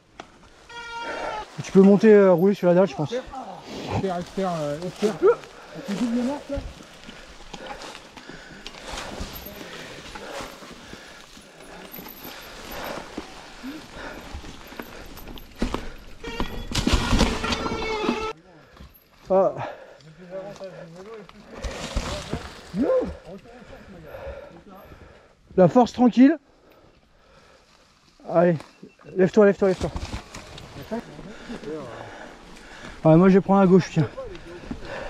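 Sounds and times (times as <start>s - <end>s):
bike tyres rolling through leaves: 0.0s - 18.4s, 20.3s - 24.4s, 27.2s - 35.0s
bike rattling over bumps: 5.6s - 18.3s.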